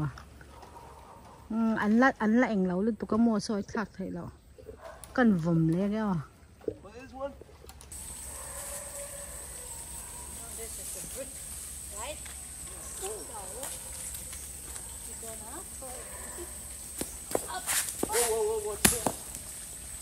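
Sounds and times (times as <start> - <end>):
distant voices: 4.6 - 20.0.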